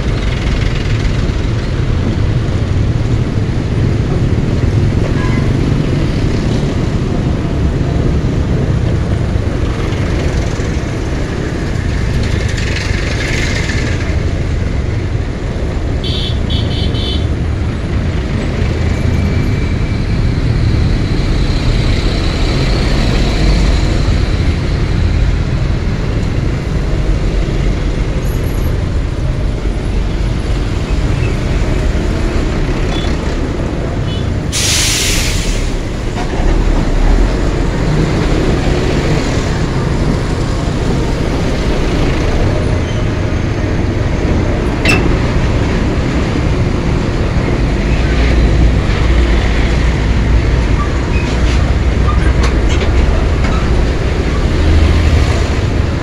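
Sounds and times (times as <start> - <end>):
trucks and motorbikes passing: 0.0 - 34.6, 35.6 - 56.0
scooter engine and road noise: 0.0 - 34.9, 35.6 - 56.0.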